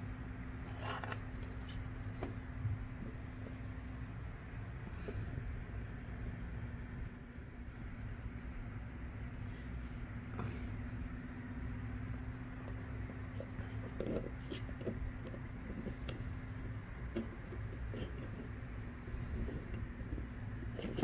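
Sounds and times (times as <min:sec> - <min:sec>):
steady low hum: 0:00.0 - 0:21.0
clicks and rattles of handling: 0:12.6 - 0:18.7, 0:19.4 - 0:21.0.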